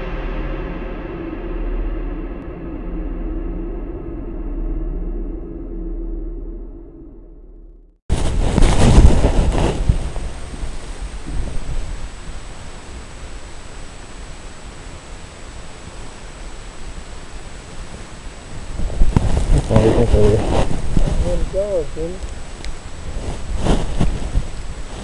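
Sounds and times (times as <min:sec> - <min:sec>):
music: 0:00.0 - 0:07.8
steady hiss: 0:08.1 - 0:25.0
wind buffeting microphone: 0:08.1 - 0:25.0.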